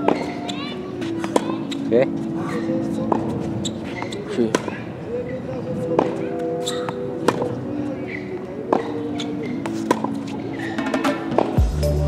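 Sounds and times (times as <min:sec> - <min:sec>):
tennis ball struck by racket: 0:00.0 - 0:01.6, 0:04.0 - 0:04.8, 0:06.0 - 0:07.6, 0:08.7 - 0:11.6
background music: 0:06.0 - 0:12.0.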